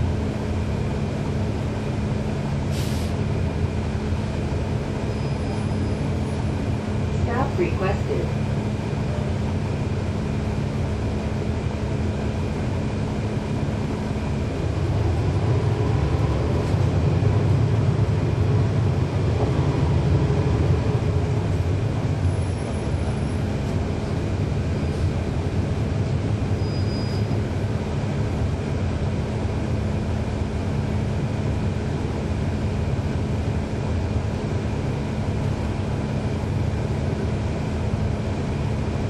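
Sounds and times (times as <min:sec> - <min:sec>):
bus diesel engine: 0:00.0 - 0:39.0.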